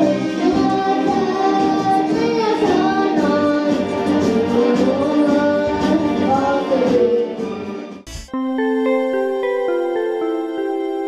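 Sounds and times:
boy singing into a microphone: 0.0s - 7.5s
musical accompaniment: 0.0s - 11.0s.

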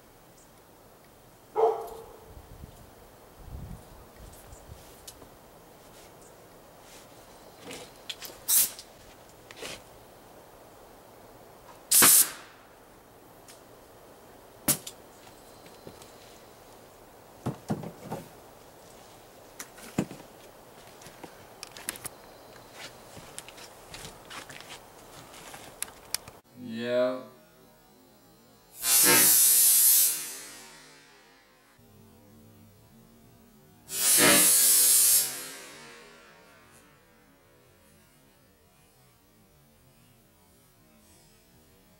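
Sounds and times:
air launcher blast and balloon pop: 11.9s - 12.5s
air launcher firing rush of air: 11.9s - 12.6s, 28.8s - 31.0s, 33.9s - 35.9s
sharp clicks: 25.8s - 26.4s.

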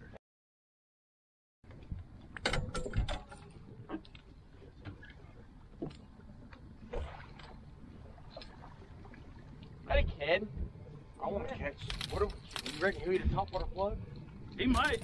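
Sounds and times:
wind: 0.0s - 0.2s, 1.6s - 15.0s
water noise: 1.7s - 15.0s
fishing gear knocks and clicks: 14.7s - 15.0s.

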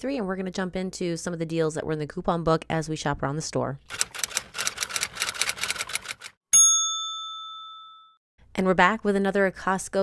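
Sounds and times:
bright bell ding: 6.6s - 8.2s.

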